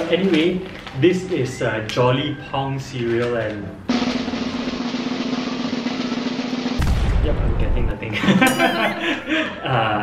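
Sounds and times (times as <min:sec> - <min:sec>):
snare drum roll: 0:03.9 - 0:07.7.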